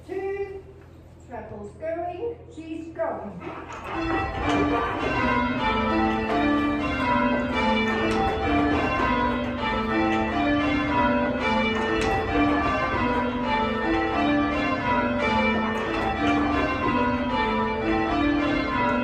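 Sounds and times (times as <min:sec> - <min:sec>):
church bells ringing: 0:03.4 - 0:19.0.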